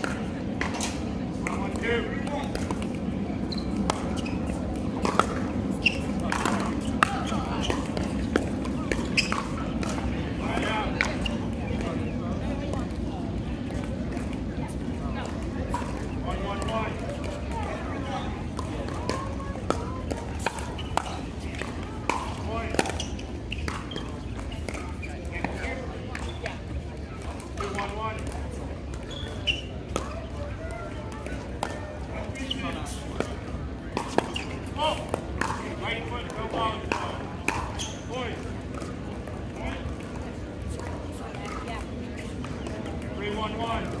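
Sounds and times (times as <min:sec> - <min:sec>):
ball bouncing: 0:00.0 - 0:44.0.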